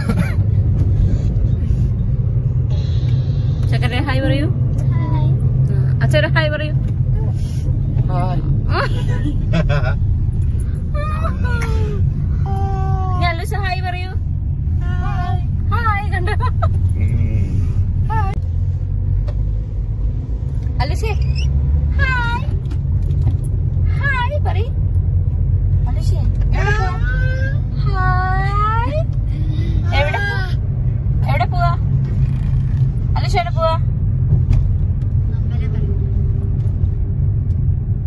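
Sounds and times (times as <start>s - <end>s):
car engine and road rumble: 0.0s - 38.0s.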